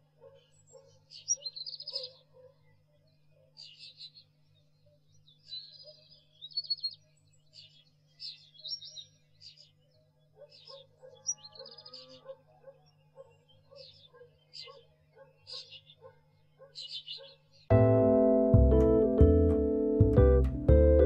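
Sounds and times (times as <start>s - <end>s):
birds chirping and trilling: 0.0s - 17.7s
quiet background music: 17.7s - 21.0s.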